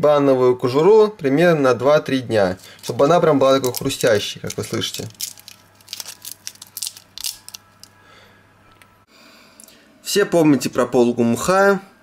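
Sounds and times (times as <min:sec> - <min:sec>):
dried banana peel crackling: 0:02.6 - 0:07.9.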